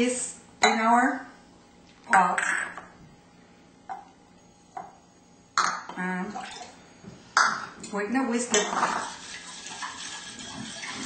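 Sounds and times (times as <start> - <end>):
utensils and pot clinking: 8.5 - 11.0.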